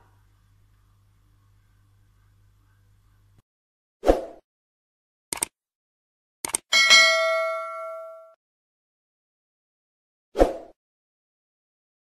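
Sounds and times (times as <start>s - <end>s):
notification bell ding: 6.7s - 8.4s.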